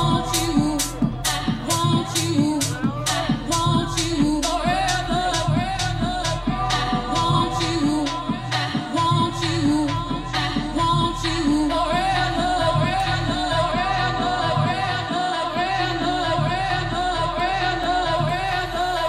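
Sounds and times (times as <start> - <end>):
electronic dance music: 0.0 - 19.0
sung vocal: 0.0 - 19.0.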